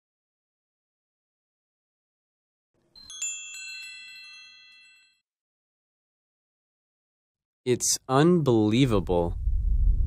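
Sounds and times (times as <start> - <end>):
bright bell-like chime: 2.9 - 5.3.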